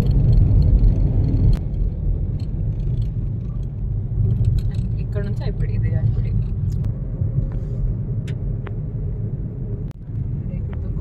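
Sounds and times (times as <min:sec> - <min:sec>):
road and wind rumble: 0:00.0 - 0:11.0.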